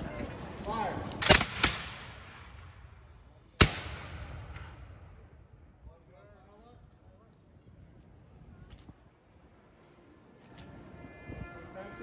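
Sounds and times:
gunshot echo: 0:01.2 - 0:05.4.

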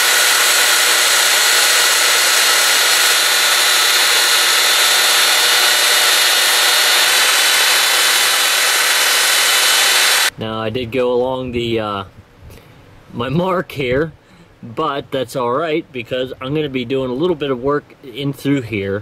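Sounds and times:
belt sander grinding horn: 0:00.0 - 0:10.3.

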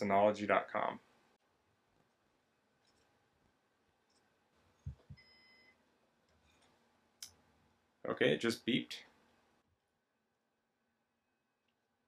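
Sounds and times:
faint short electronic beep: 0:05.1 - 0:05.8.

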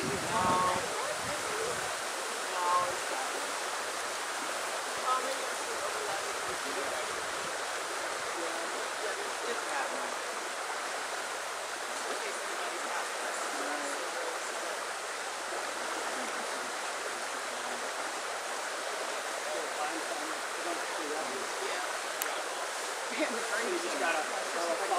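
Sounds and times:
rushing water: 0:00.0 - 0:24.9.

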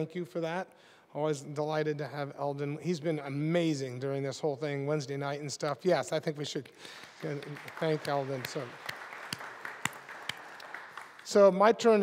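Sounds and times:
congregation applauding: 0:06.8 - 0:12.0.

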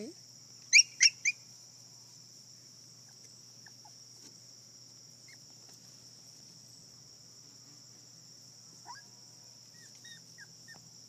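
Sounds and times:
crickets chirring: 0:00.0 - 0:11.0
puppy yipping: 0:08.8 - 0:09.1, 0:09.8 - 0:10.8.

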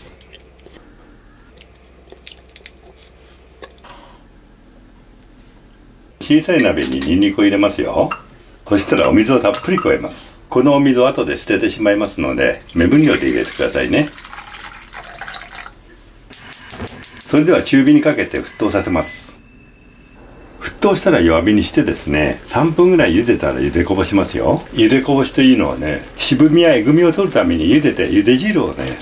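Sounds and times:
water pouring into saucepan: 0:12.4 - 0:15.8, 0:21.6 - 0:29.0.

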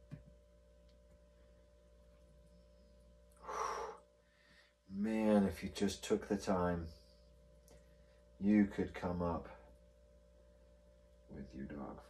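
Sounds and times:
faint steady hum: 0:00.0 - 0:12.0
man blowing out a breath: 0:03.4 - 0:04.0.

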